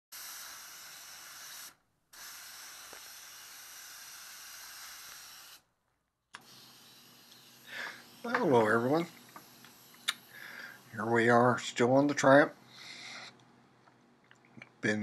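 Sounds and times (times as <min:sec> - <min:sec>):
spray gun hissing: 0:00.1 - 0:05.7, 0:06.4 - 0:11.2.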